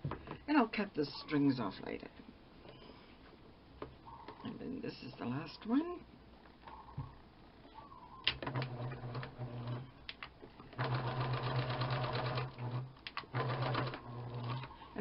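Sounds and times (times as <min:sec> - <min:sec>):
electric sewing machine stitching: 0:08.4 - 0:09.8, 0:10.8 - 0:14.7.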